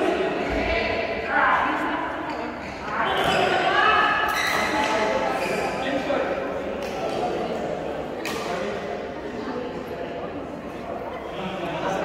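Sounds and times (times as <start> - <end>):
voices chattering in echoing hall: 0.0 - 12.0.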